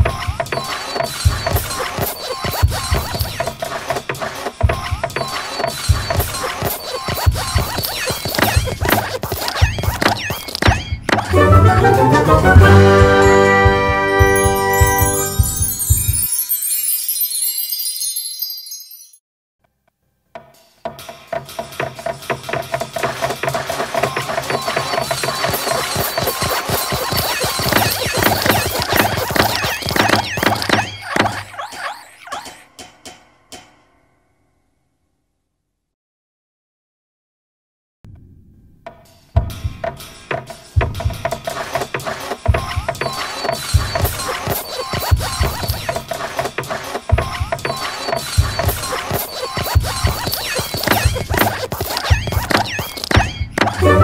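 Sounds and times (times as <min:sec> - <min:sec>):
high squeaks: 0:00.6 - 0:03.6, 0:05.3 - 0:11.3, 0:24.4 - 0:32.6, 0:43.0 - 0:46.2, 0:47.6 - 0:54.0
cartoon hopping thuds: 0:05.9 - 0:13.2, 0:24.9 - 0:31.6, 0:43.8 - 0:46.0, 0:48.4 - 0:54.0
music: 0:11.2 - 0:18.6, 0:20.3 - 0:30.4, 0:38.9 - 0:51.6, 0:53.6 - 0:54.0
scratch-like clicks: 0:25.4 - 0:30.9, 0:48.6 - 0:53.8.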